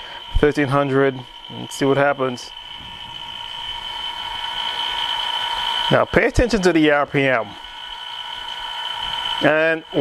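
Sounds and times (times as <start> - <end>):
spin coater motor whine: 0.0 - 10.0.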